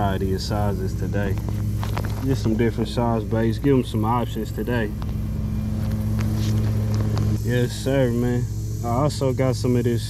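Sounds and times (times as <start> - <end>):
lawn mower engine running: 0.0 - 10.0.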